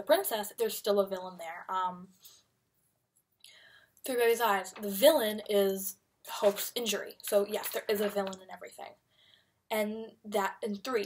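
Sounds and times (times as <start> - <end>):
faint in-breath: 3.4 - 4.0, 9.1 - 9.6.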